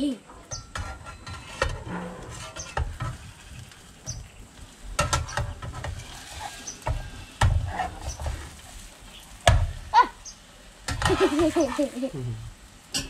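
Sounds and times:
metal spatula scraping a frying pan: 0.4 - 9.0, 10.9 - 12.0.

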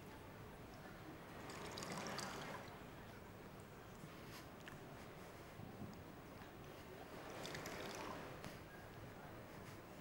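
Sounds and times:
wine pouring into a glass: 1.4 - 2.7.

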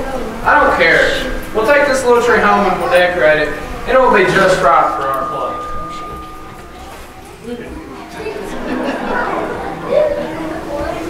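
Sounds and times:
chatter of overlapping voices: 0.0 - 11.0.

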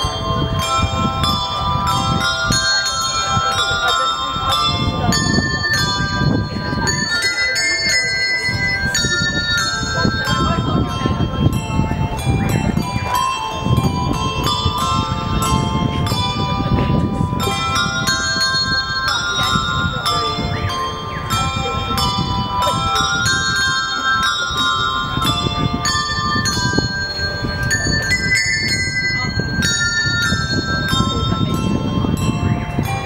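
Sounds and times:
handbells ringing: 0.0 - 33.0.

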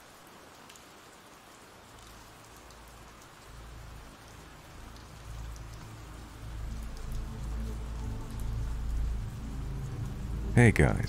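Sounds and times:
rain patter: 0.0 - 11.0
low sustained music notes: 3.2 - 11.0.

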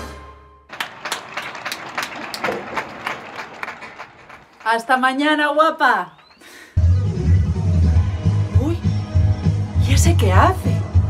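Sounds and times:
applause: 0.7 - 6.7.

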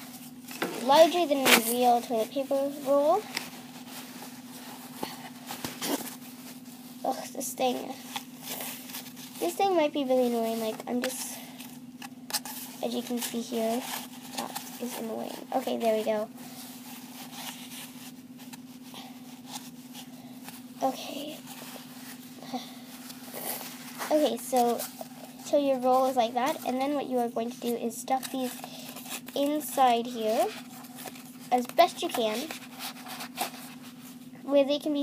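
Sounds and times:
cardboard and paper rustling: 0.0 - 34.2
low electrical hum: 0.0 - 35.0
toilet paper rustling: 28.2 - 34.2.

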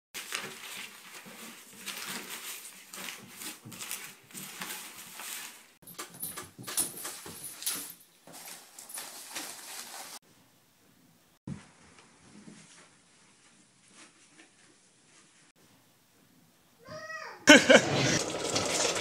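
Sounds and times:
paper rustling and crinkling: 0.2 - 10.2.

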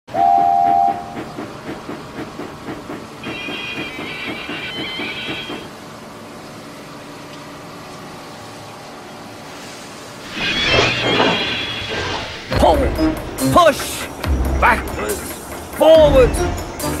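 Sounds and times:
steam locomotive whistle: 0.1 - 1.2, 3.2 - 5.7
steam locomotive chuffing: 0.1 - 5.9, 9.6 - 17.0.

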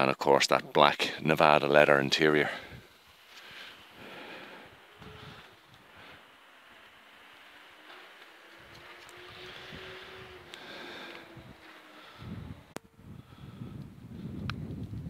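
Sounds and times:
wind buffeting microphone: 1.9 - 15.0.

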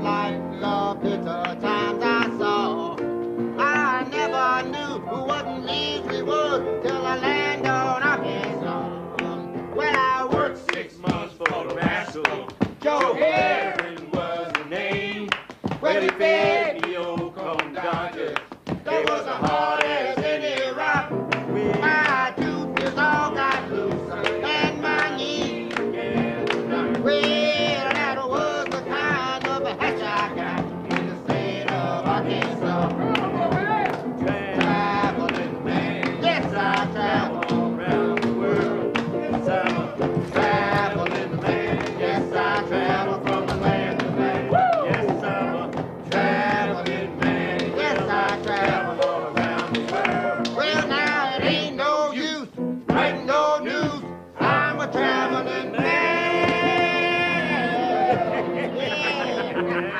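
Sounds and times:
piano playing: 0.0 - 14.6, 18.9 - 59.9
man singing: 0.0 - 59.9.

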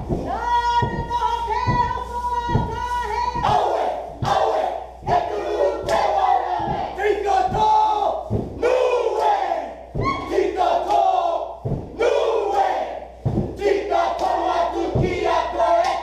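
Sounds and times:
heavy thumps: 0.0 - 16.0
group shouting a chant: 0.8 - 16.0.

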